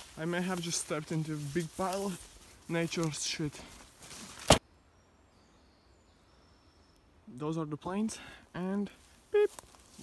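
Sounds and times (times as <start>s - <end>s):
leaves rustling against camera: 0.0s - 4.6s, 8.8s - 10.0s.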